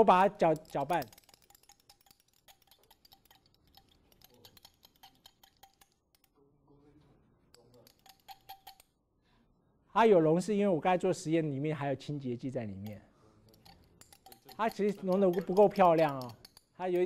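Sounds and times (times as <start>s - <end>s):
stirring rod clinking on glass beaker: 0.0s - 6.4s, 7.6s - 8.9s, 12.7s - 17.0s.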